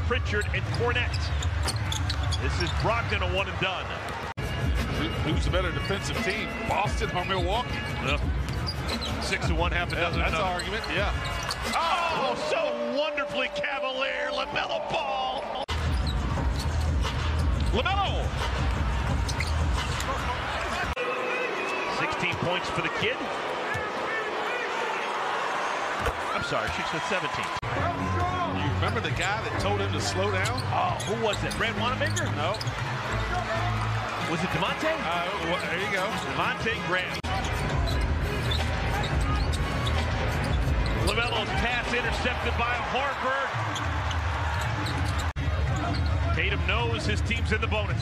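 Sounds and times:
arena crowd noise: 0.0s - 48.0s
sneakers squeaking on hardwood: 0.4s - 2.9s, 7.2s - 9.2s, 9.9s - 11.8s, 19.2s - 20.0s, 37.1s - 41.4s, 43.5s - 46.2s.

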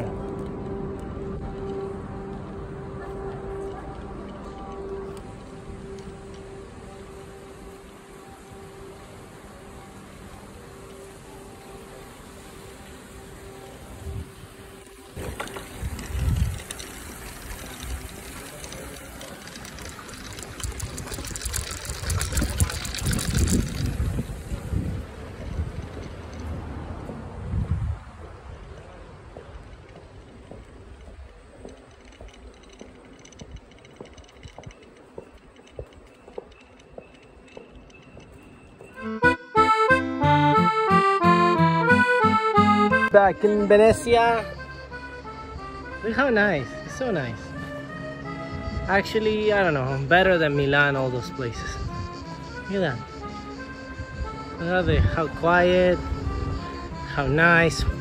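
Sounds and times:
wind buffeting microphone: 13.8s - 36.4s, 48.1s - 50.3s, 51.3s - 58.0s.

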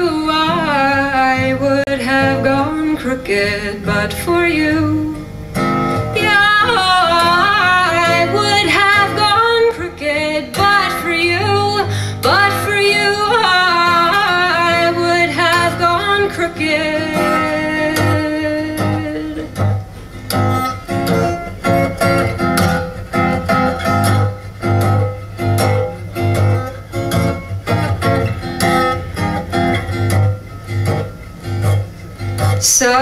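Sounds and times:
acoustic guitar picking: 0.0s - 33.0s.

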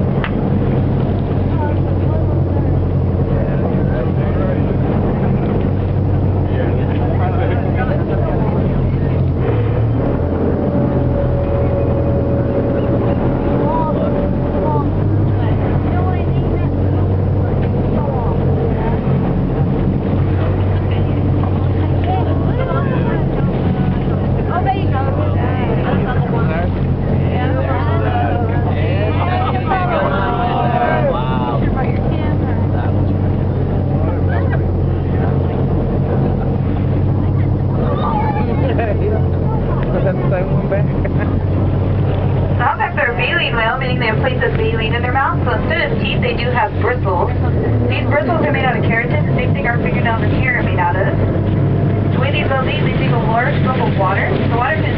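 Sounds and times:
boat engine humming: 0.0s - 54.9s.

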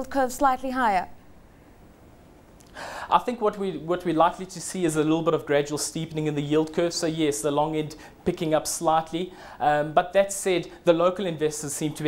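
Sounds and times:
low background hiss: 0.0s - 12.0s
man's quick in-breath: 2.7s - 3.1s, 9.3s - 9.6s
man speaking: 3.0s - 12.0s.

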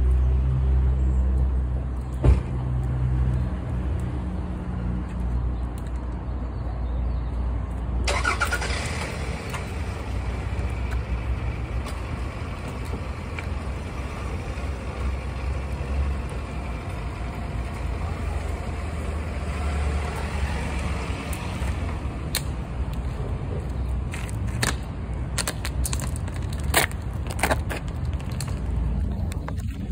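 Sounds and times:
loud vehicle noise: 0.0s - 29.9s
low engine rumble: 7.6s - 29.9s.

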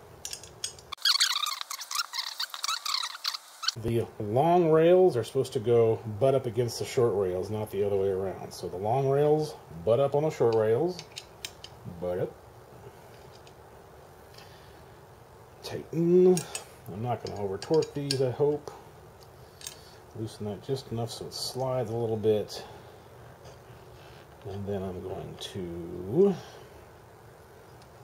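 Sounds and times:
room hiss: 0.0s - 28.0s
sped-up squeaky voice chatter: 1.0s - 3.8s.

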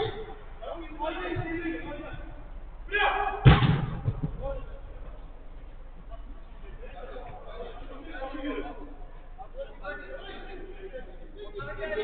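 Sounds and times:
player shouting: 2.8s - 3.6s
football kicked hard: 3.4s - 4.5s.

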